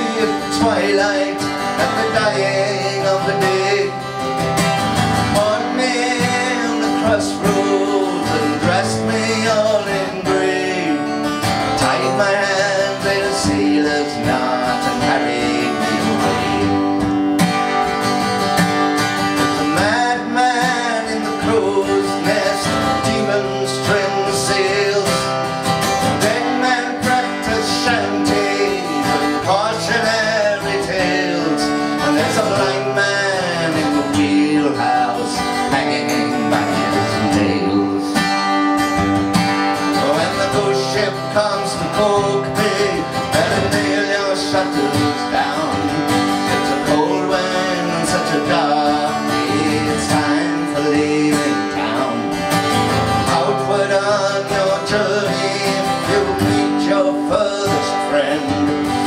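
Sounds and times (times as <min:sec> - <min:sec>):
sliding guitar lead line: 0:00.0 - 0:59.0
strummed acoustic guitar: 0:00.0 - 0:59.0.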